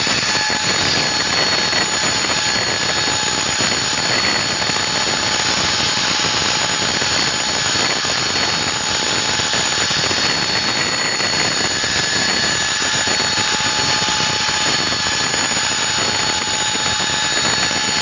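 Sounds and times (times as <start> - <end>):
mechanical drone with whining tones: 0.0 - 18.0.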